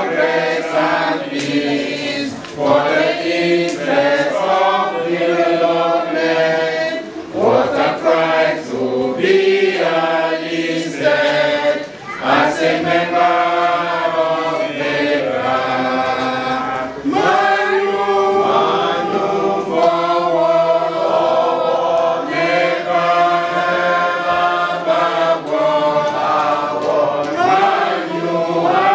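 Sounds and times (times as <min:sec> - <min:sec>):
group singing without instruments: 0:00.0 - 0:28.9.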